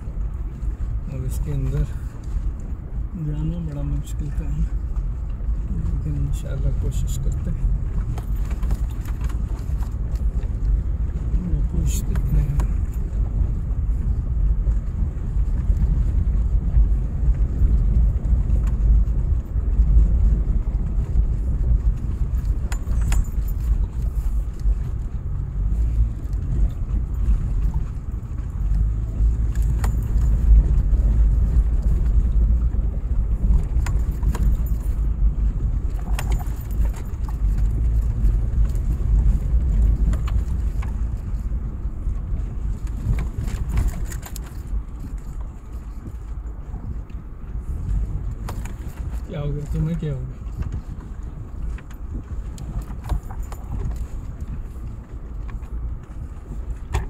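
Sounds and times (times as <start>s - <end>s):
car driving over dirt track: 0.0s - 57.0s
light clicks and rattles: 0.0s - 57.0s.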